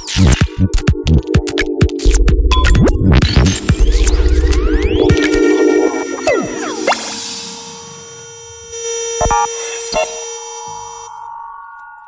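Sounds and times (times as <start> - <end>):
held synthesizer tones: 5.0 - 11.2.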